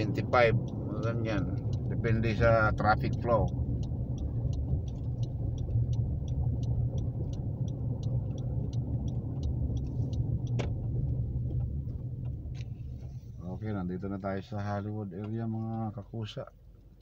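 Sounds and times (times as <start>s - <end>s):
car engine and road rumble: 0.0s - 17.0s
light regular ticking: 0.0s - 17.0s.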